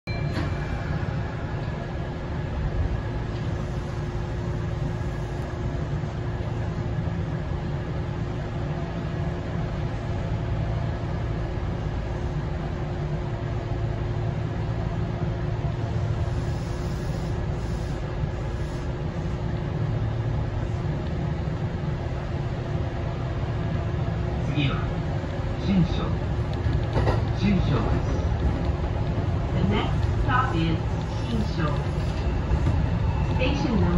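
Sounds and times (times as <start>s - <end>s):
constant hum: 0.1s - 33.9s
electric train rumbling: 0.1s - 33.9s.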